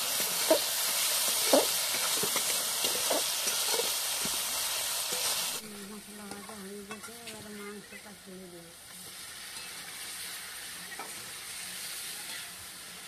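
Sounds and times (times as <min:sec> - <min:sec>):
metal spatula scraping a pan: 0:00.0 - 0:04.4
spices sizzling in oil: 0:00.0 - 0:13.0.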